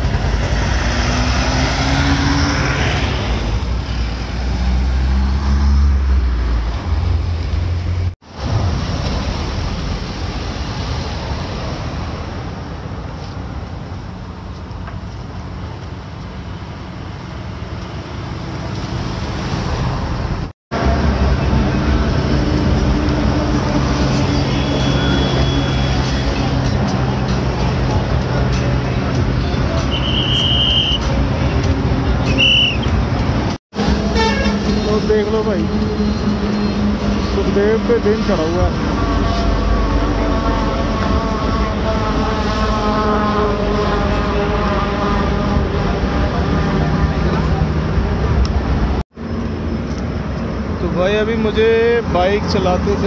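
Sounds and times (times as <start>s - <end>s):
road traffic rumble: 0.0s - 53.0s
people talking: 34.7s - 35.8s, 37.3s - 38.8s, 50.8s - 53.0s.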